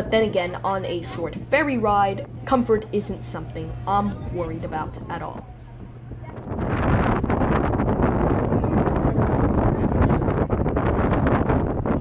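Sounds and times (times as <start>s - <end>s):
wind buffeting microphone: 0.0s - 12.0s.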